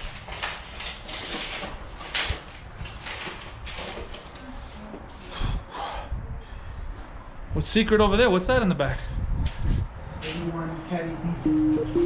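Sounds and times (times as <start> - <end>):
knocks and clatter of handling: 0.0 - 4.5.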